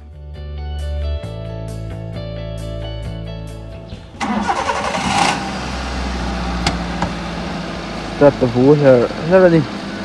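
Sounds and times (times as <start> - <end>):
car engine starting and idling: 4.0 - 10.0.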